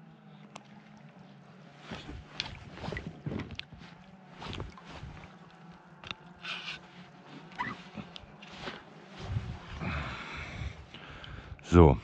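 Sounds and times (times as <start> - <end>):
water splashing and sloshing: 0.1 - 11.6
brief squeak: 7.5 - 7.8.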